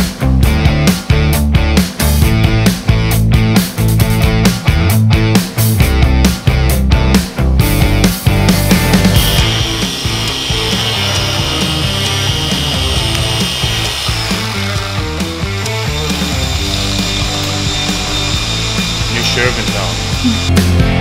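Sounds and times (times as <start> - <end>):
background music: 0.0 - 21.0
polisher whining: 8.7 - 21.0.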